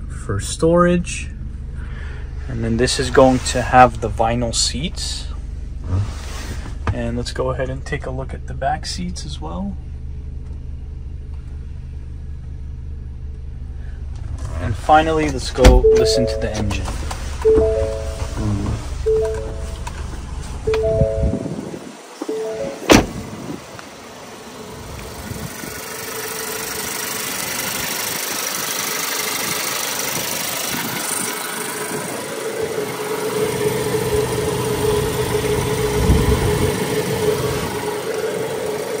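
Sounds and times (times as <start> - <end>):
car engine idling: 0.0 - 39.0
three-tone chime: 15.8 - 16.8, 17.5 - 18.5, 19.1 - 19.9, 20.7 - 21.6, 22.2 - 23.0.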